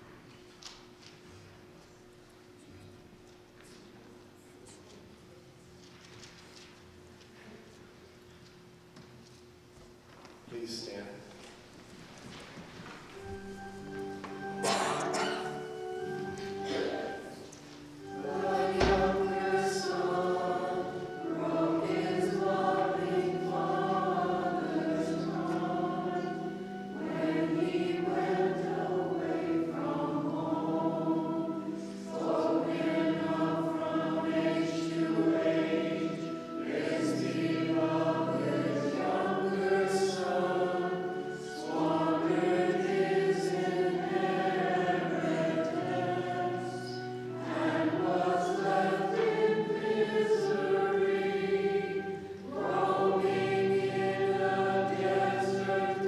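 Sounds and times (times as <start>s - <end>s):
voices singing a hymn: 13.2s - 56.0s.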